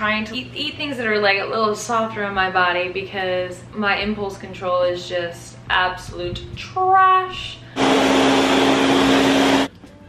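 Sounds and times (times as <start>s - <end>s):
blender motor running: 7.8s - 9.7s.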